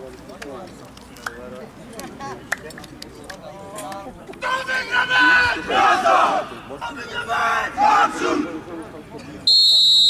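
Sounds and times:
team shouting in unison: 0:04.4 - 0:08.6.

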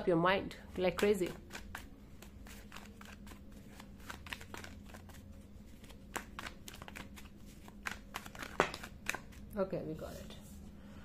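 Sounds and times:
cards being shuffled: 0:00.7 - 0:09.5.

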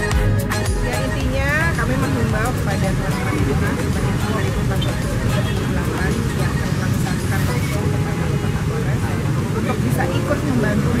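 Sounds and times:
woman speaking: 0:00.8 - 0:11.0.

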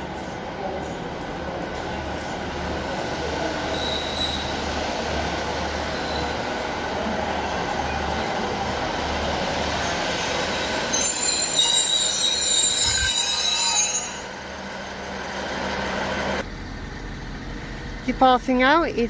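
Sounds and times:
diesel train running over rails: 0:00.0 - 0:19.0
train wheels squealing: 0:03.4 - 0:04.8, 0:05.8 - 0:06.5, 0:09.7 - 0:14.5.

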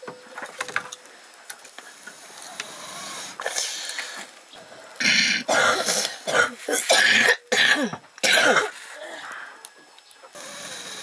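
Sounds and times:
person coughing hard: 0:05.5 - 0:08.7.

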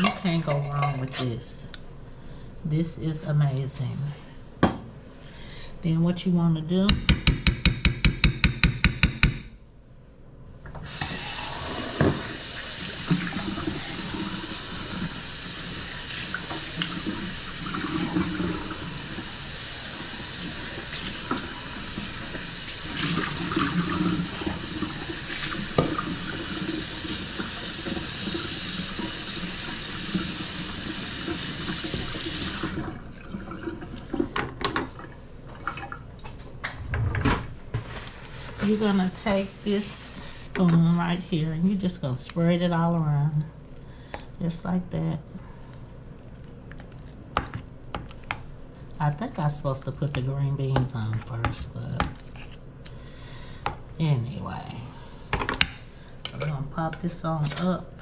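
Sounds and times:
faucet running into metal sink: 0:10.9 - 0:33.7.

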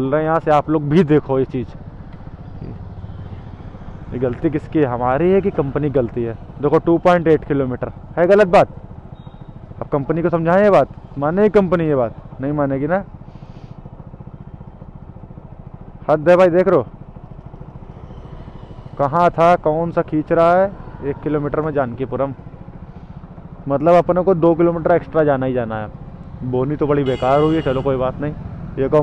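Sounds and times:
motorcycle engine idling: 0:00.0 - 0:29.0.

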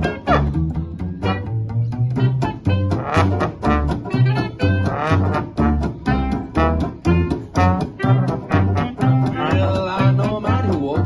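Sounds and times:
trombone: 0:00.0 - 0:00.6, 0:01.2 - 0:10.8
clarinet: 0:00.0 - 0:10.8
plucked double bass: 0:00.0 - 0:11.0
rhythm guitar: 0:00.0 - 0:11.0.

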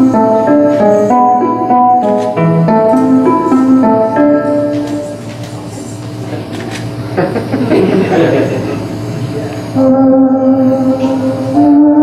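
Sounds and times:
music: 0:00.0 - 0:05.2, 0:09.8 - 0:12.0
steady low hum: 0:00.0 - 0:12.0.

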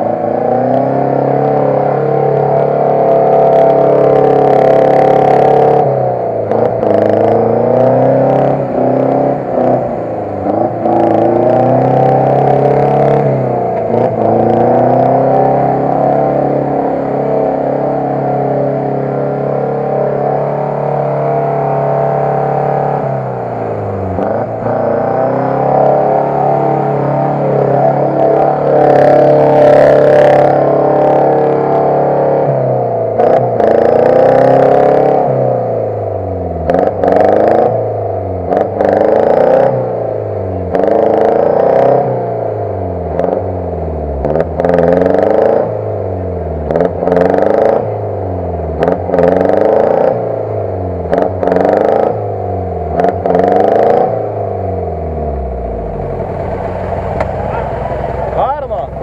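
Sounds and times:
engine revving: 0:00.0 - 0:59.0.

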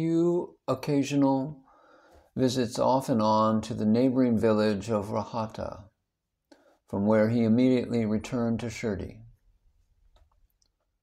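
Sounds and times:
man reading aloud: 0:00.0 - 0:01.7, 0:02.3 - 0:06.0, 0:06.9 - 0:09.4.

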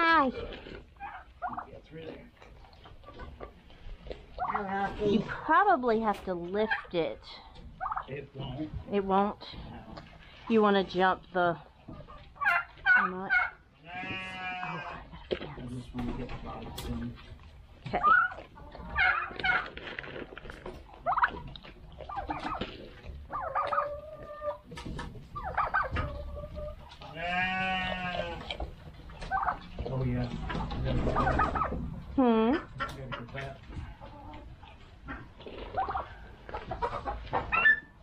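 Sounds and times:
turkeys clucking: 0:00.0 - 0:38.0
goats bleating: 0:13.8 - 0:15.1, 0:27.0 - 0:28.6.

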